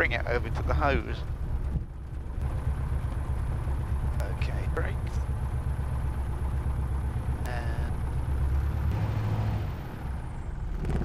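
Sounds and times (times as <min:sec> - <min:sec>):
light aircraft engine taxiing: 0:00.0 - 0:11.0.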